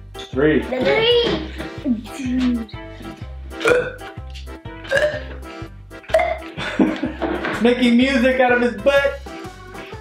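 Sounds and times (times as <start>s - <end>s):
music with steady beat: 0.0s - 10.0s
toy bulb pump burping: 3.6s - 4.0s, 4.8s - 5.4s, 6.0s - 6.5s.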